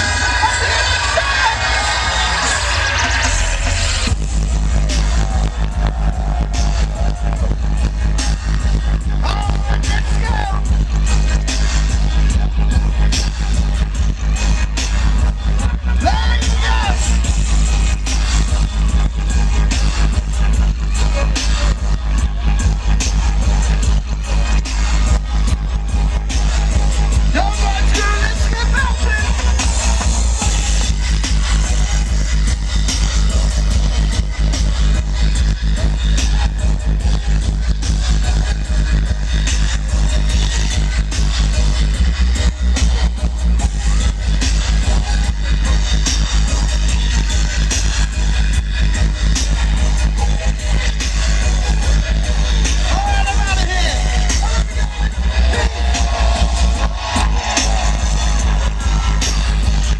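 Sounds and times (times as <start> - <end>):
dubstep music over sound system: 0.0 - 59.9
heavy sub-bass: 0.0 - 59.9
person speaking over music: 9.2 - 10.7, 16.0 - 17.2, 27.2 - 29.4, 52.8 - 54.5.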